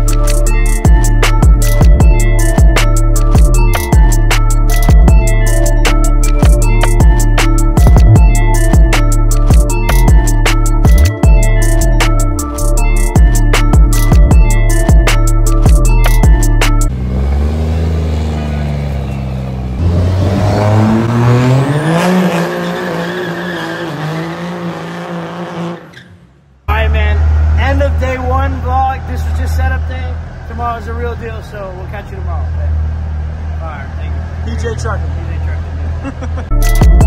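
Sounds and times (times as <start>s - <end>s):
truck engine accelerating: 0.0s - 37.0s
man talking: 26.7s - 32.8s, 33.6s - 35.6s.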